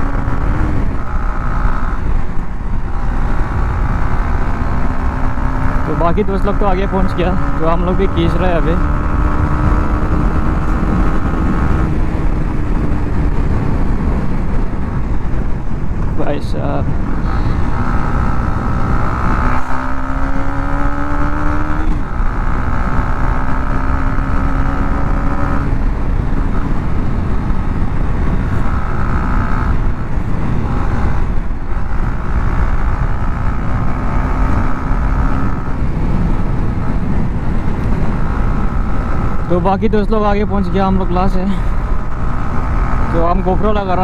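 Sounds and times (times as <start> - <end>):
motorcycle engine revving: 0.0 - 44.0
wind and road noise: 0.0 - 44.0.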